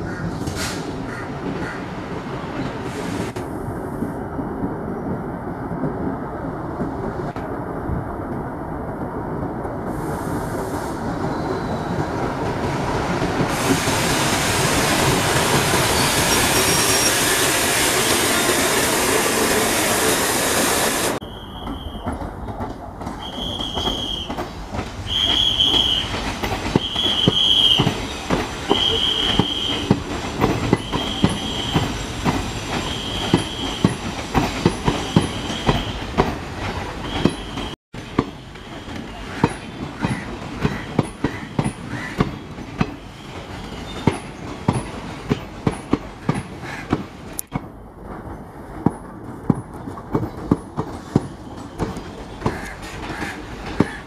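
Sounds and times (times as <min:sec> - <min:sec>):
diesel locomotive engine and wheels: 0:00.0 - 0:54.0
high wheel squeal: 0:11.1 - 0:12.2, 0:15.5 - 0:22.2, 0:23.2 - 0:24.4, 0:25.1 - 0:29.9, 0:30.6 - 0:34.1, 0:34.8 - 0:36.1
train wheels clicking over joints: 0:12.0 - 0:54.0.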